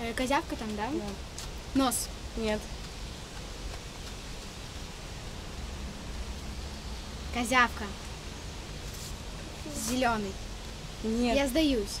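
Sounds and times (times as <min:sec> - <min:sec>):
even outdoor hiss: 0:00.0 - 0:12.0
low rumble: 0:00.8 - 0:11.2.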